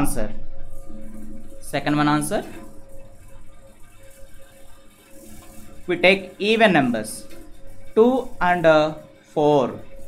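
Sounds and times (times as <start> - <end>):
low steady hum: 0.0 - 10.0.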